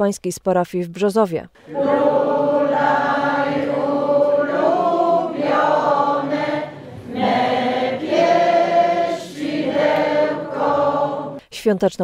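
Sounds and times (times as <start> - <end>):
group singing a carol: 1.6 - 11.4.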